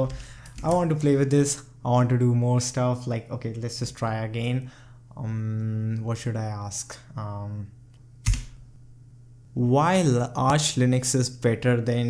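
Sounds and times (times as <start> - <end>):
computer keyboard keypress: 0.0 - 0.8.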